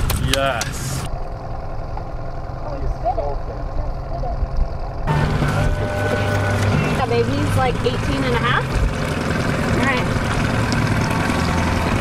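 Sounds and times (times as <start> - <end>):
outboard motor running: 0.0 - 12.0
wind: 0.0 - 12.0
water: 6.1 - 12.0.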